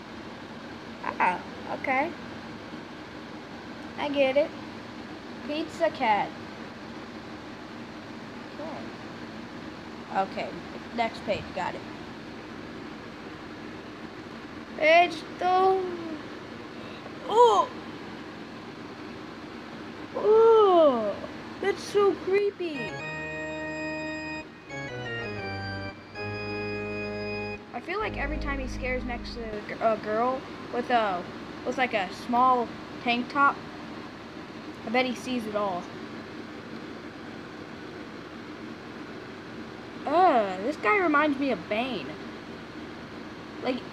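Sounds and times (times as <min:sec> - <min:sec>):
room tone hiss: 0:00.0 - 0:43.9.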